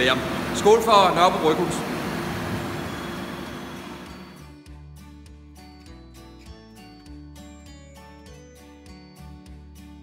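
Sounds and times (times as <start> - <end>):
machinery hum and hiss: 0.0 - 4.4
faint held tone: 2.6 - 4.5.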